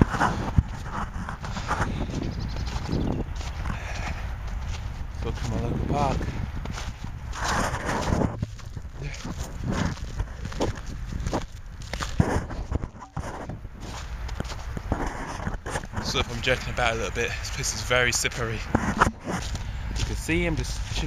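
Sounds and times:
low microphone rumble: 0.0s - 16.7s
boot footsteps crunching on snow: 0.0s - 21.0s.

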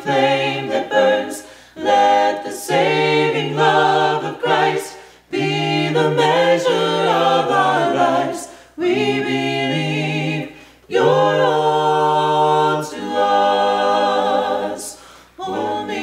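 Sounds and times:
group singing a cappella: 0.0s - 16.0s.

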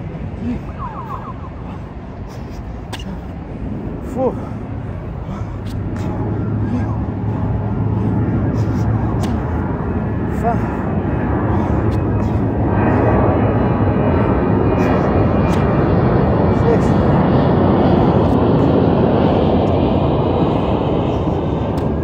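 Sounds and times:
loud steady rumbling: 0.0s - 22.0s.

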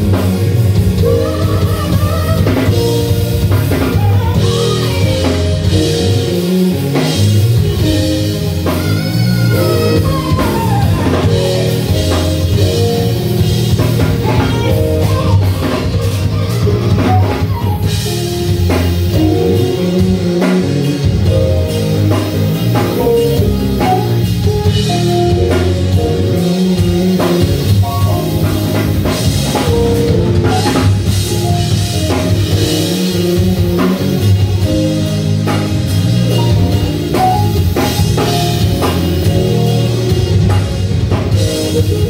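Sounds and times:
drum kit: 0.0s - 42.0s
electric bass: 0.0s - 42.0s
keyboard: 0.0s - 42.0s
melodic lead line: 0.0s - 42.0s.

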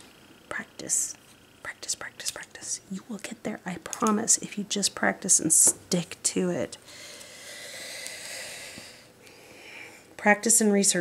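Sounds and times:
steady airy hiss: 5.4s - 10.2s.

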